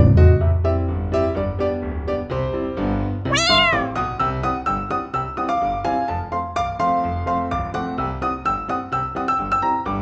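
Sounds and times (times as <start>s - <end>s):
cat meowing: 3.3s - 4.0s
piano music: 3.3s - 5.8s.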